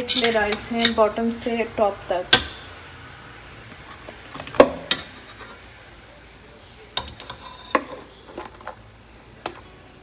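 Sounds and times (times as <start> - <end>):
spatula scooping rice: 0.0 - 1.0, 7.0 - 8.2.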